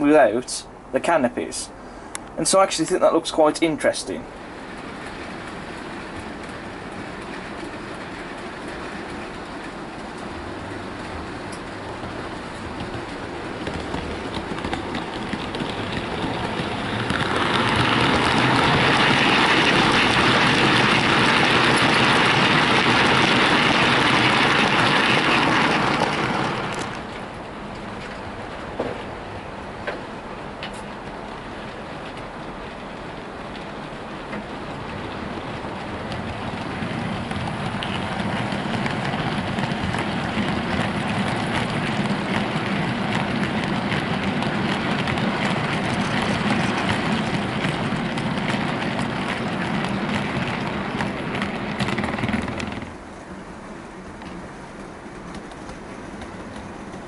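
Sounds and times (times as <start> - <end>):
model train wheels rolling on rails: 0.0 - 57.0
faint clicks: 2.1 - 2.4.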